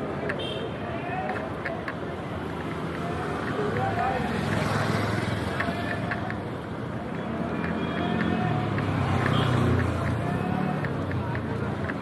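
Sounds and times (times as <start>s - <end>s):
people talking: 0.0s - 12.0s
traffic: 0.0s - 12.0s.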